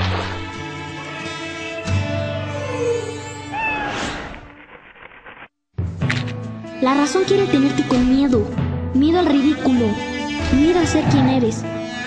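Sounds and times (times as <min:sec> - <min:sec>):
music: 0:00.0 - 0:04.2, 0:05.8 - 0:12.0.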